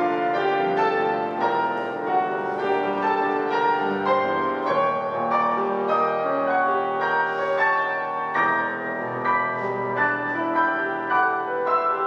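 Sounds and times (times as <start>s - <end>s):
grand piano playing: 0.0s - 12.0s.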